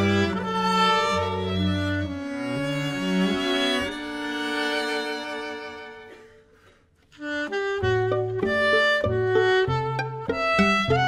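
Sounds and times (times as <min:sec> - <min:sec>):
alto saxophone: 0:00.0 - 0:11.0
string quartet: 0:00.0 - 0:11.0.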